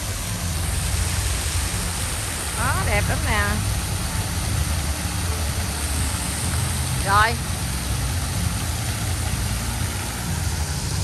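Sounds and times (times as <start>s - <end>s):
fountain water splashing: 0.0s - 11.0s.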